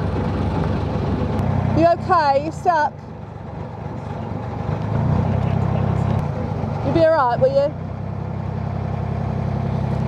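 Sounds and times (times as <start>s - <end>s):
diesel engine humming: 0.0s - 10.0s.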